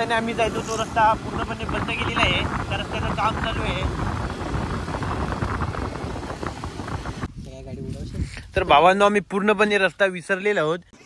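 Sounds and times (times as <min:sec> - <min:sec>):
wind rush on microphone: 0:00.0 - 0:09.3.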